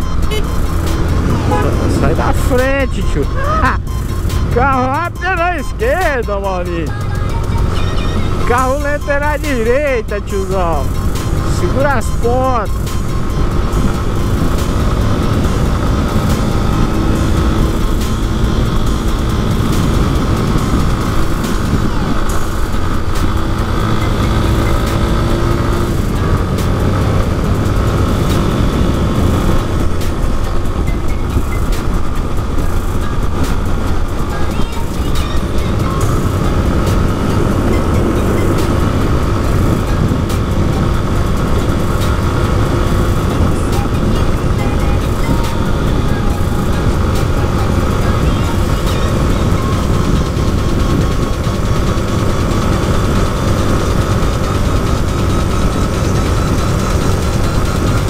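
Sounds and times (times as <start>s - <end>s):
motorcycle engine running: 0.0s - 58.0s
wind rushing over microphone: 10.8s - 58.0s.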